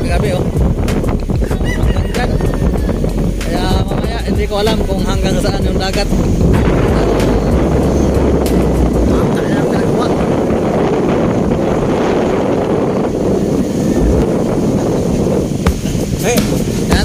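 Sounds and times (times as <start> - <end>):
storm waves surf: 0.0 - 17.0
strong wind buffeting microphone: 0.0 - 17.0.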